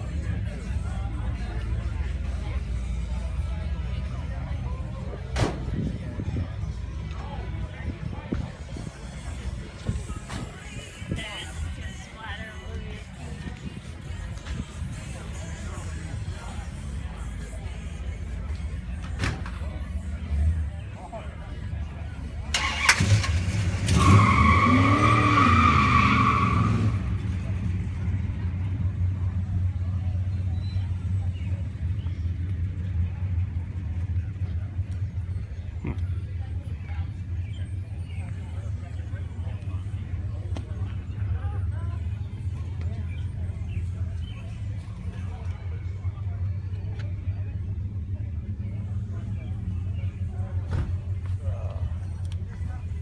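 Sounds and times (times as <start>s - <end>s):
faint voices: 0.0s - 53.0s
car engine starting and idling: 21.6s - 53.0s.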